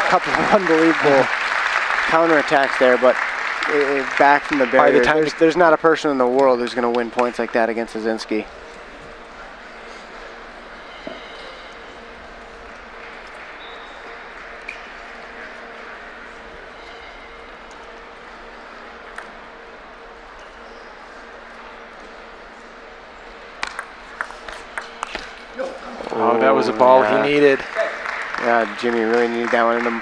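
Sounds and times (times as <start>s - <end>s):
low hum: 5.8s - 27.0s
table tennis ball clicking: 19.1s - 19.4s, 23.6s - 25.3s.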